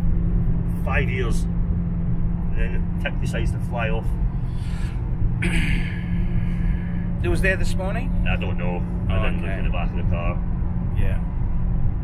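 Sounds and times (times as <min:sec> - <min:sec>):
car engine drone in cabin: 0:00.0 - 0:12.0.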